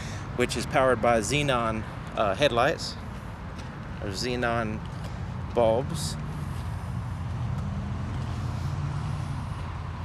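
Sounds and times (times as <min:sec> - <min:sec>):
faint outdoor background noise: 0:00.0 - 0:10.0.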